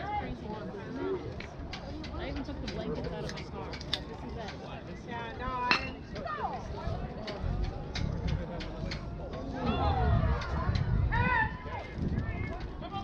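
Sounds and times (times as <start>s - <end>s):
people calling and shouting: 0.0s - 13.0s
spectators talking: 0.0s - 13.0s.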